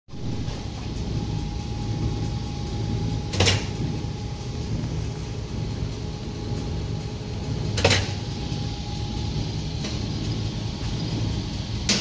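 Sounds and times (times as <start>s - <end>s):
low machine hum: 0.1s - 12.0s
thin steady whine: 0.1s - 12.0s.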